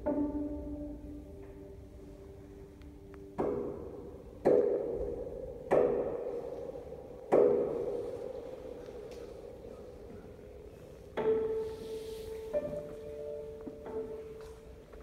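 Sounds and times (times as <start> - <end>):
piano chords ringing: 0.0 - 15.0.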